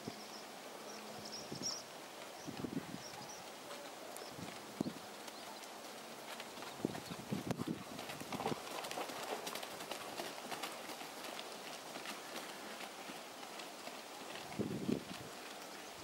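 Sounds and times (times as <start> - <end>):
horse hoofbeats on soft ground: 1.2 - 16.0.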